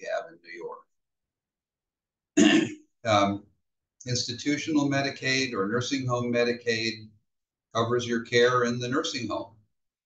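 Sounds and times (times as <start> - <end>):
man clearing his throat: 2.4 - 2.9.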